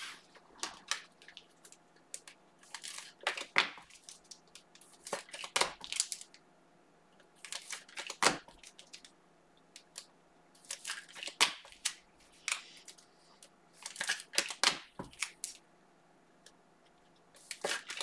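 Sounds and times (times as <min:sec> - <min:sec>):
plastic packaging crinkling and tearing: 0:02.2 - 0:06.3.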